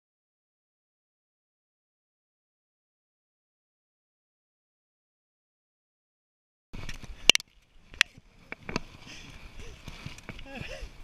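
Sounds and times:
bicycle rolling on pavement: 6.8 - 10.7
person laughing: 10.4 - 11.0.

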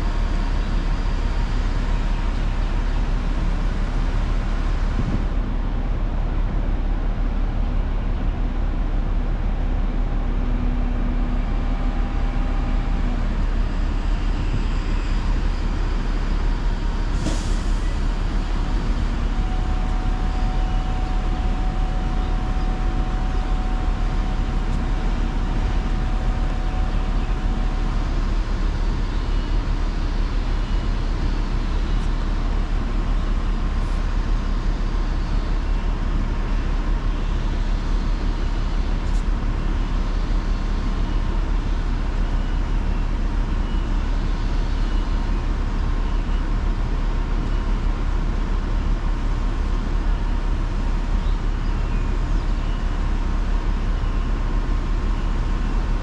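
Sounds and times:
diesel engine running: 0.0 - 56.0
faint whine: 17.4 - 46.7.

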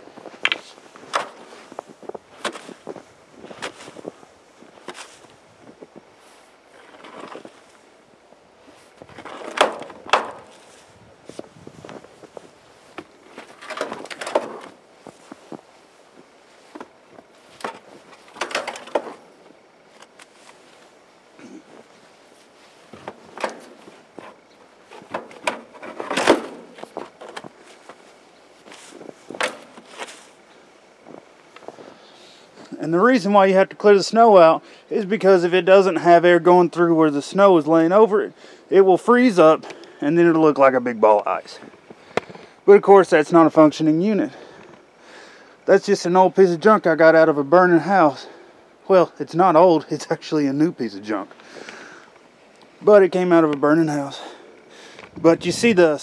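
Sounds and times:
boots crunching in snow: 0.0 - 8.0, 8.6 - 18.4, 25.9 - 32.6.

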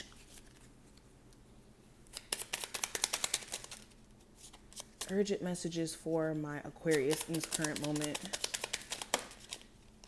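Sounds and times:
cards being shuffled: 0.0 - 0.7, 2.1 - 5.3, 6.8 - 10.0.

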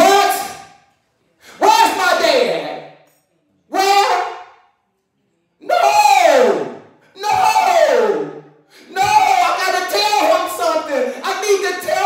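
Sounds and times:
man hollering through a microphone: 0.0 - 0.8, 1.5 - 2.9, 3.7 - 4.6, 5.6 - 12.0.

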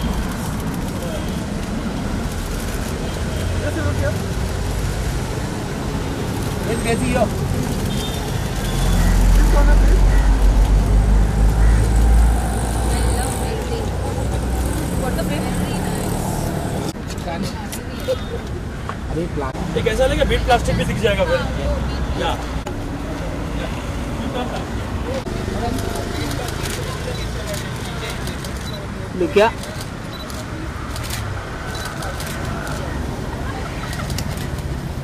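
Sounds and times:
street traffic: 0.0 - 35.0.

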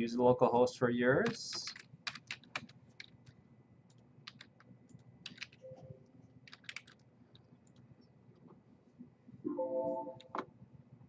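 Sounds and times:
typing on computer keyboard: 1.2 - 3.3, 4.2 - 5.6, 6.4 - 7.8.

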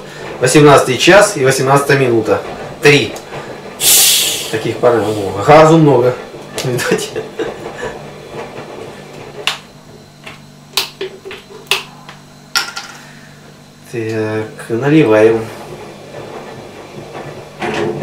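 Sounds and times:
fizzy drink hiss: 3.8 - 5.4.

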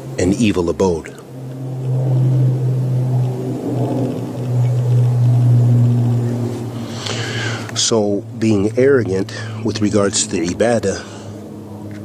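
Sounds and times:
faint wavering tones: 0.0 - 12.0
steady low hum: 0.0 - 12.0.

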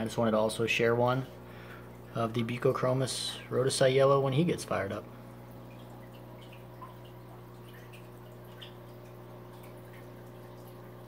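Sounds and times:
aquarium filter humming: 0.0 - 11.0
water dripping and trickling: 3.8 - 11.0.

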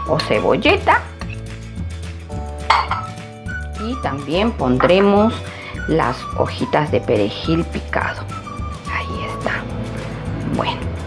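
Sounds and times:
background music: 0.0 - 11.0
glass bowl clinking: 2.6 - 3.2, 4.8 - 5.4.

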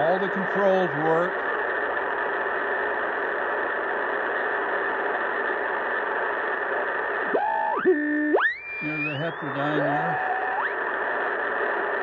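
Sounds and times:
radio static hiss: 0.0 - 12.0
whistling tone sliding in pitch: 8.4 - 10.7.

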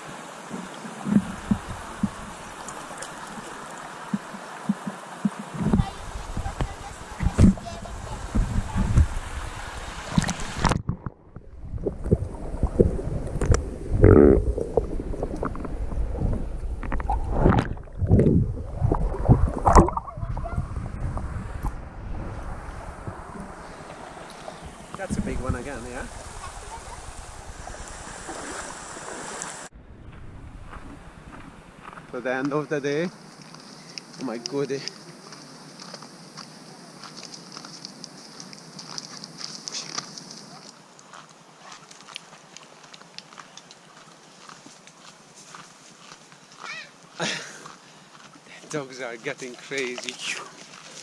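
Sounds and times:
water sloshing and splashing: 0.0 - 29.7
muffled underwater thumps and gurgles: 1.0 - 2.4, 4.1 - 9.2, 10.1 - 21.8.

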